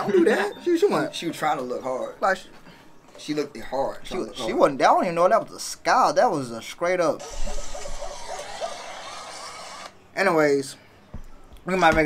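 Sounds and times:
tinny video playback: 0:00.0 - 0:12.0.

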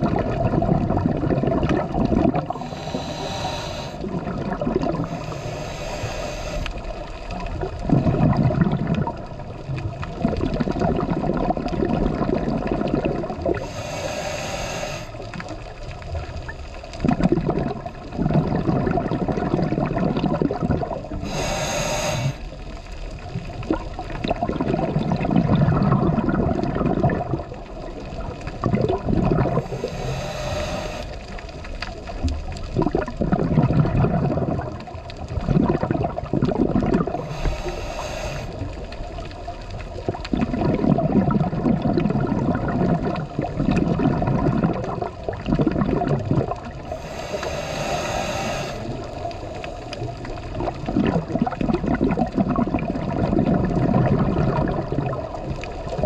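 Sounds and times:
gurgling exhaust bubbles: 0:00.0 - 0:05.5, 0:06.8 - 0:13.8, 0:15.2 - 0:22.5, 0:23.2 - 0:30.0, 0:31.2 - 0:37.6, 0:38.5 - 0:56.0
scuba regulator hissing inhalations: 0:02.4 - 0:07.1, 0:13.5 - 0:15.4, 0:21.1 - 0:22.6, 0:29.5 - 0:31.4, 0:37.0 - 0:38.9, 0:46.8 - 0:50.3.

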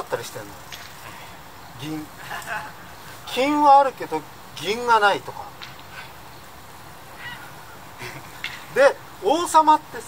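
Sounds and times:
low outdoor background noise: 0:00.0 - 0:10.0
faint high-pitched call: 0:07.2 - 0:07.6.

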